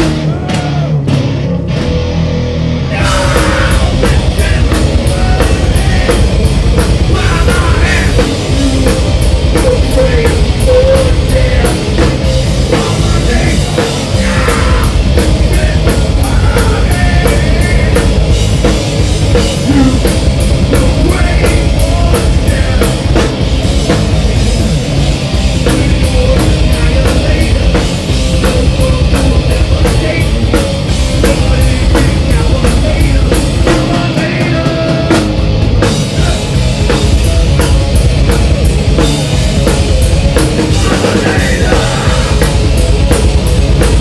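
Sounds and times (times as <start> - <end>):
drum kit: 0.0 - 44.0
electric guitar: 0.0 - 44.0.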